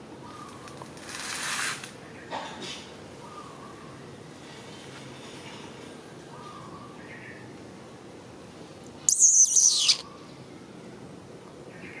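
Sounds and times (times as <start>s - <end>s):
shrill high-pitched sound: 9.1s - 10.0s
faint bird chirps: 9.1s - 10.3s.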